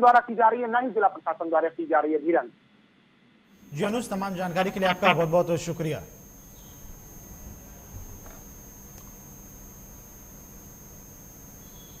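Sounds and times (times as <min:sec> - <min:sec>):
electrical hum and hiss: 0:00.0 - 0:12.0
high-pitched whine: 0:03.5 - 0:12.0.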